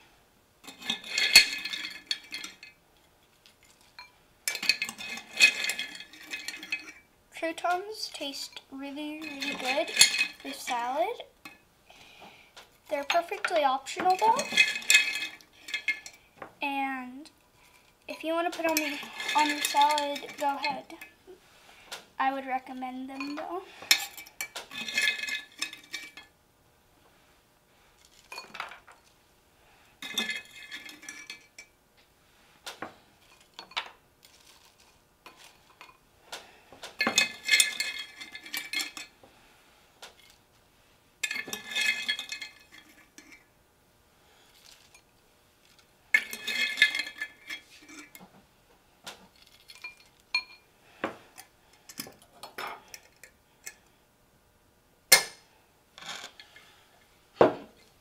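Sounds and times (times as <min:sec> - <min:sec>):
metal spoon scraping glass jar: 0:04.0 - 0:07.0, 0:09.2 - 0:10.9, 0:13.0 - 0:16.2, 0:18.1 - 0:21.0, 0:46.2 - 0:48.2.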